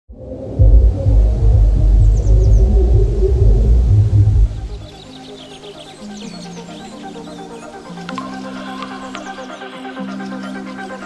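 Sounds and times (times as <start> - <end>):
cinematic bass rumble: 0.1 - 5.0
low droning layer: 0.1 - 5.1.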